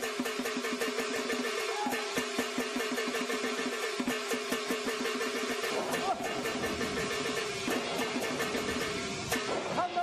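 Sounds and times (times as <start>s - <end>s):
fast percussion strokes: 0.0s - 10.0s.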